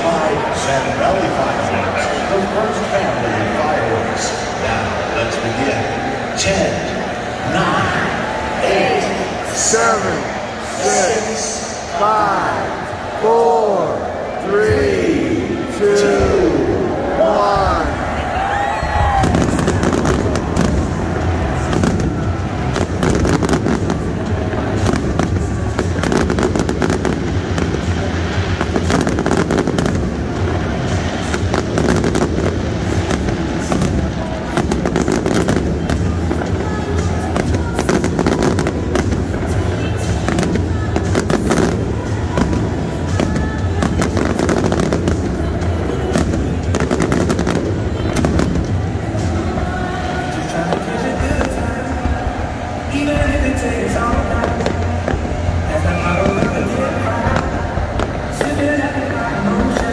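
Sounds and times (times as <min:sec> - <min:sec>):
music playing: 0:00.0 - 0:59.9
fireworks bangs and crackles: 0:16.2 - 0:59.9.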